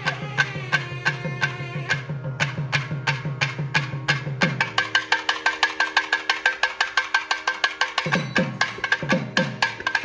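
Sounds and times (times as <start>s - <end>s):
fast ringing percussion strokes: 0.0s - 10.0s.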